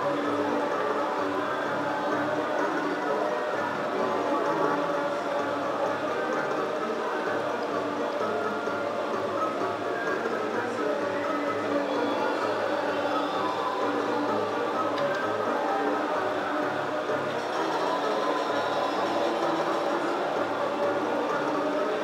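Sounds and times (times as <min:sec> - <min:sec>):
casino chatter: 0:00.0 - 0:22.0.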